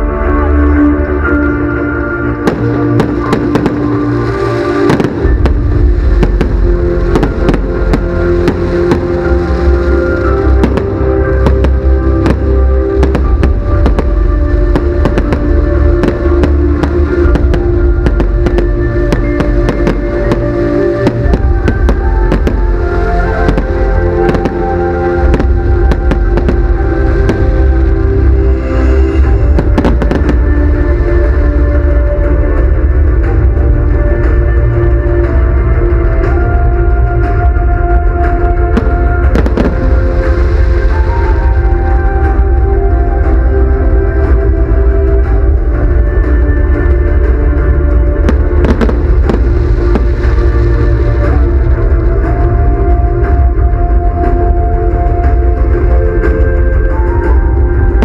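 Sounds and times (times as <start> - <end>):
loud music with deep bass: 0.0 - 58.0
fireworks bangs and crackles: 2.3 - 58.0.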